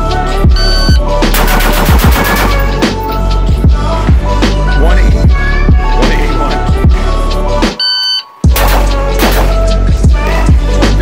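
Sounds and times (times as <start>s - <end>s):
background music: 0.0s - 11.0s
rapid rifle shots: 1.3s - 3.0s, 8.5s - 9.9s.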